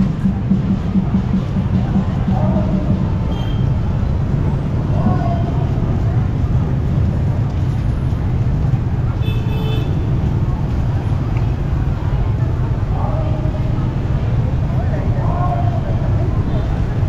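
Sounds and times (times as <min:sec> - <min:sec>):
crowd voices: 0:00.0 - 0:17.0
street rumble: 0:00.0 - 0:17.0
vehicle horn toot: 0:03.3 - 0:03.7, 0:09.2 - 0:10.1.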